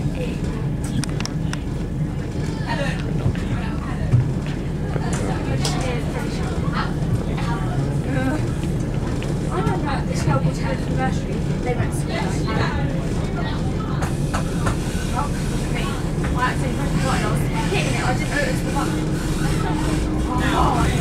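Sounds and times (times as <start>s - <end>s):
train rumble from inside carriage: 0.0s - 21.0s
indistinct voices talking: 1.6s - 21.0s.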